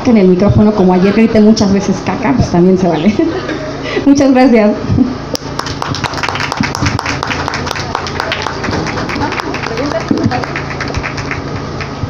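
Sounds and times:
steady low hum: 0:00.0 - 0:12.0
audience applauding: 0:05.4 - 0:12.0.

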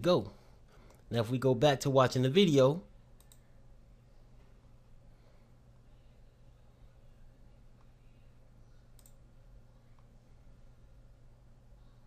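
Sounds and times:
low steady hum: 0:00.0 - 0:12.0
computer mouse click: 0:03.2 - 0:03.5, 0:08.9 - 0:09.2.

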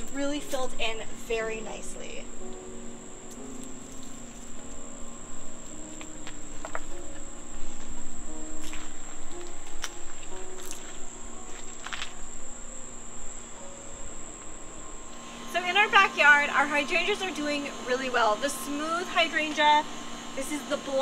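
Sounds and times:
crickets trilling: 0:00.0 - 0:21.0.

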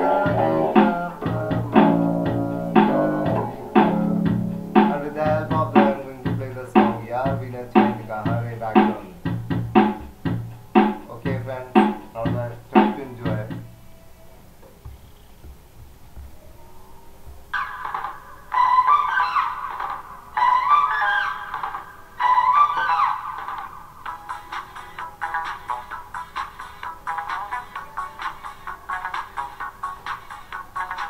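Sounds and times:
higher melody with gliding pitch: 0:00.0 - 0:06.0
electric bass guitar notes: 0:00.0 - 0:13.7.

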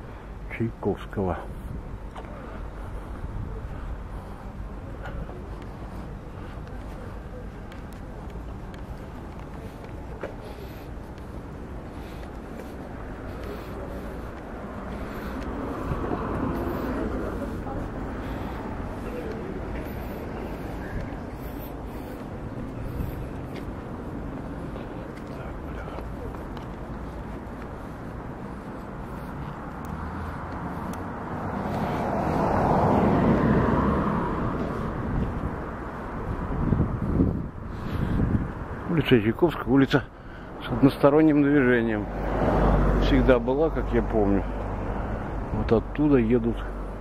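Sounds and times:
passing traffic: 0:00.0 - 0:47.0.

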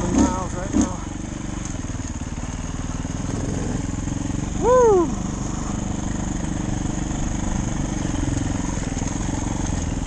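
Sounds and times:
dirt bike engine running: 0:00.0 - 0:10.0.

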